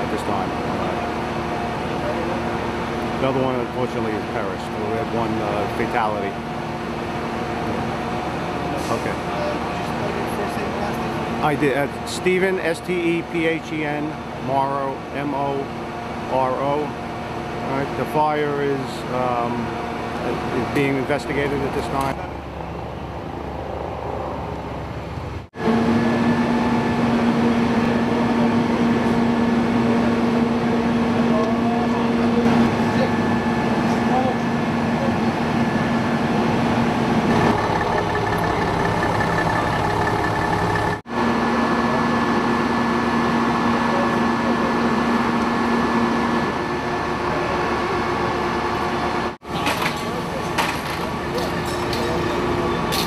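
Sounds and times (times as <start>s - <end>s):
fire engines droning: 0.0s - 53.0s.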